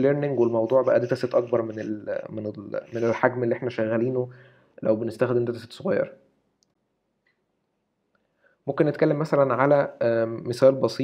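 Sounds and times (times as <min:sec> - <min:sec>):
man's voice: 0:00.0 - 0:06.1.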